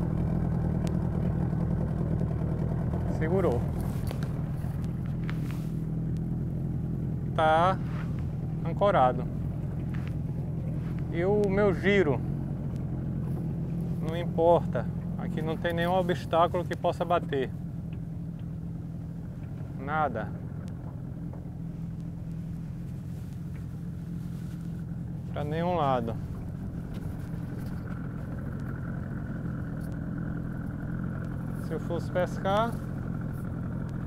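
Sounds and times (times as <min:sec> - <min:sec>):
boat motor idling: 0:00.0 - 0:34.0
faint light clicks: 0:26.4 - 0:28.8, 0:29.7 - 0:31.6.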